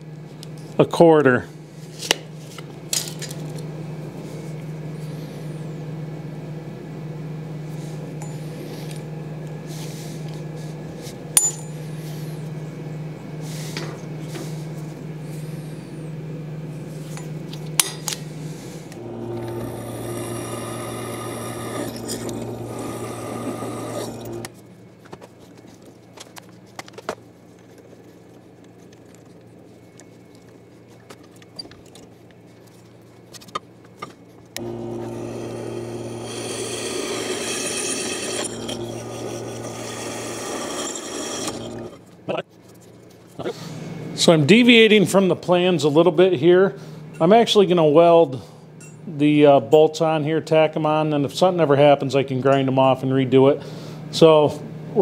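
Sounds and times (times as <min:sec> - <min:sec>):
drill press drilling steel: 0:19.0 - 0:24.5, 0:34.6 - 0:42.0.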